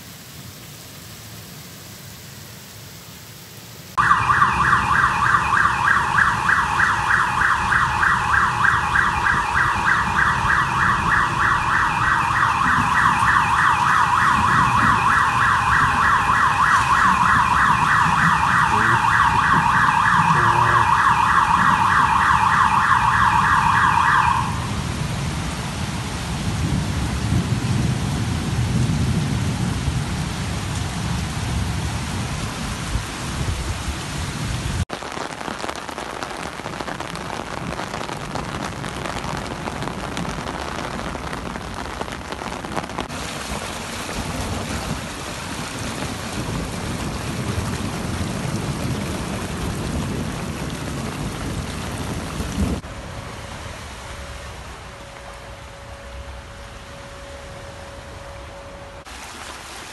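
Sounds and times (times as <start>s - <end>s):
heavy rain: 0.0s - 59.9s
car alarm pulsing tone: 4.0s - 24.7s, 52.9s - 59.1s.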